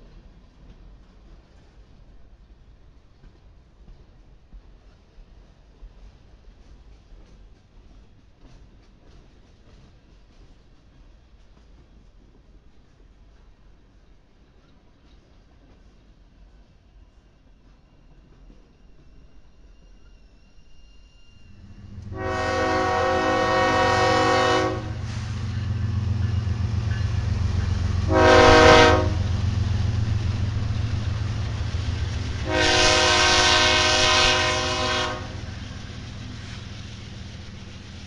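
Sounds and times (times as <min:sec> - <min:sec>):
diesel locomotive engines rumbling: 0:20.6 - 0:38.0
multi-note air horn blasts: 0:22.1 - 0:25.3, 0:28.0 - 0:29.3, 0:32.4 - 0:35.4.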